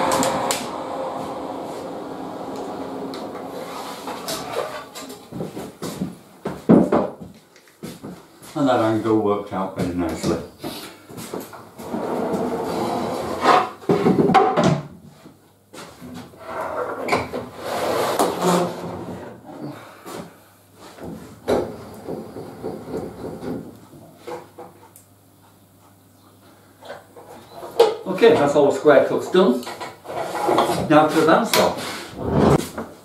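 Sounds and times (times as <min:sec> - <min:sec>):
wooden boards scraping and knocking: 0:16.5 - 0:19.3, 0:21.1 - 0:23.7, 0:29.8 - 0:32.9.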